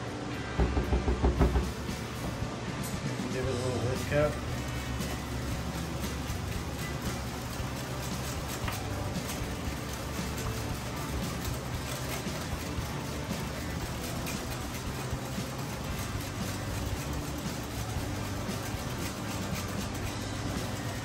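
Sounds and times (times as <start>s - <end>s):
background music: 0.0s - 21.0s
whisk beating in glass bowl: 3.5s - 21.0s.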